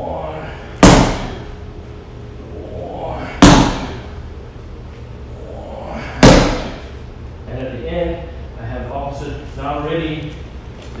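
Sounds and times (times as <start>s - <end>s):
punches smacking impact pad: 0.8s - 1.5s, 3.3s - 4.0s, 6.2s - 6.9s.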